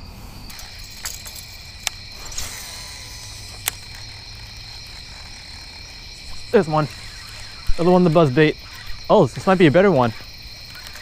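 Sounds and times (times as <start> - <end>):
insects chirping: 0.0 - 11.0
sharp clicks: 0.5 - 11.0.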